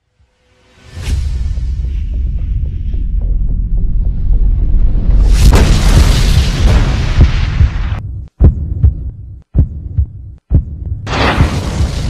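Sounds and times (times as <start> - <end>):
deep rumble: 1.4 - 12.0
booming hits: 5.4 - 8.0, 11.0 - 12.0.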